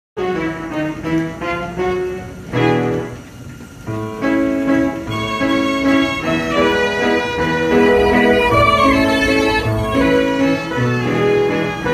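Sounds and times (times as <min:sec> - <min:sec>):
roll-driven piano: 0:00.4 - 0:11.9
mechanically bowed violins: 0:06.2 - 0:11.9.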